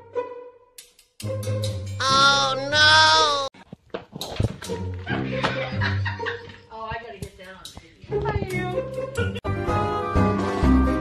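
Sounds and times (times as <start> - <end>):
background music: 0.0 - 3.5
person talking: 2.0 - 3.5
laughter: 5.1 - 6.7.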